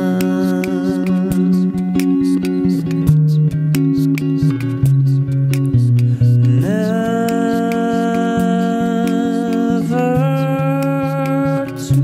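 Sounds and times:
humming vocal harmonies: 0.0s - 2.9s, 5.8s - 12.0s
beatboxed beat: 0.0s - 12.0s
electric guitar: 0.0s - 12.0s.

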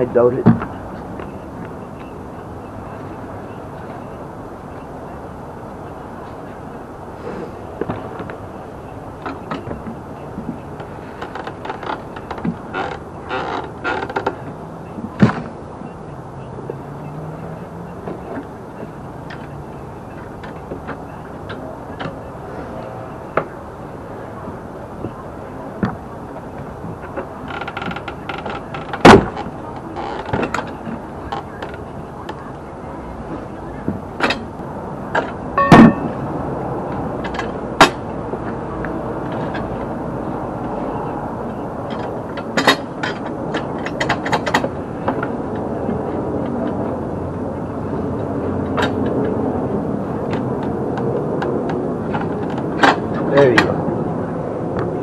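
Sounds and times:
steel bar clanking on wheel rim: 35.1s - 36.2s
sharp metal knocks: 35.2s - 36.2s.

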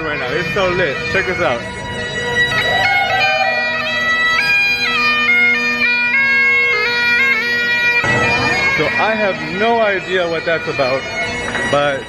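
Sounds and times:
bagpipes playing a lively melody: 0.0s - 12.0s.

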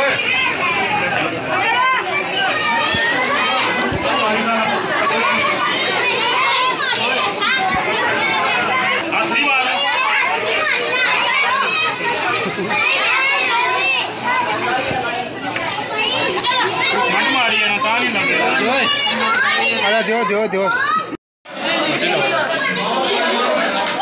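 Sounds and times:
children chattering: 0.0s - 24.0s.

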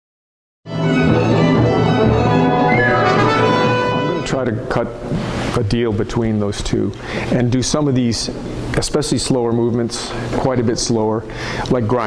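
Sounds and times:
chamber ensemble playing held chords: 0.7s - 4.8s.

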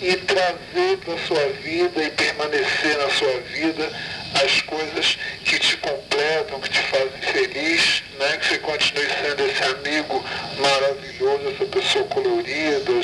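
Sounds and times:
telephone-like voice speaking: 0.0s - 13.0s.

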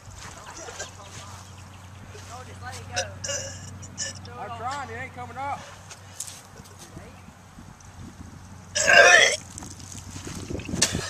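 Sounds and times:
man gagging and retching: 3.2s - 4.2s, 8.8s - 9.5s, 10.7s - 11.0s.

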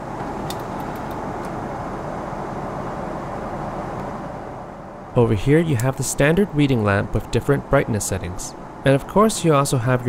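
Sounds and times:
airplane cabin airflow and engines: 0.0s - 10.0s.

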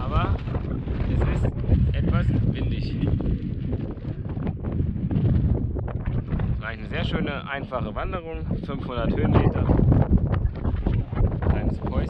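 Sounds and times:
strong wind buffeting microphone: 0.0s - 12.0s.

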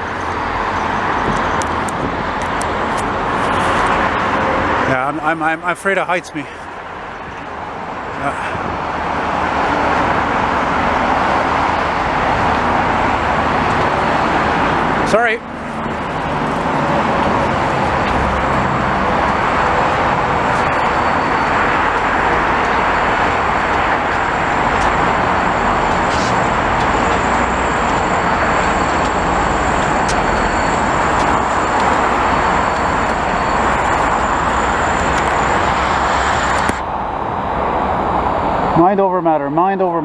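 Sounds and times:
highway traffic tyre hiss: 0.0s - 39.0s.

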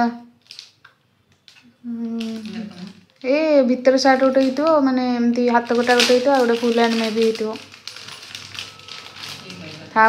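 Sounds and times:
plastic wrapper crinkling: 0.3s - 10.0s.

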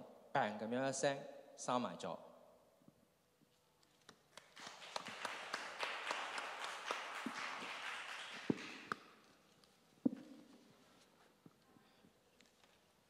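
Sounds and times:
audience applauding: 4.3s - 9.1s.

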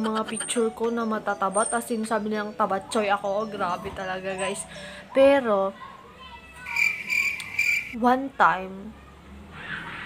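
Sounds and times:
cricket chirping: 6.7s - 8.0s.

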